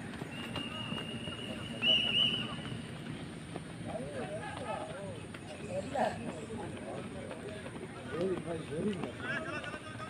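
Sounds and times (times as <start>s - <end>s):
footfalls on dirt track: 0.0s - 5.6s.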